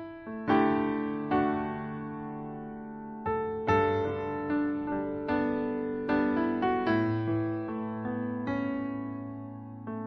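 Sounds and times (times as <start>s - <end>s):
gentle piano chords: 0.0s - 10.0s.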